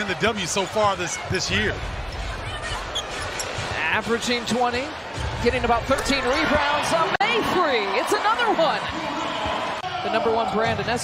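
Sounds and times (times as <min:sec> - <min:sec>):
crowd hubbub: 0:00.0 - 0:10.6.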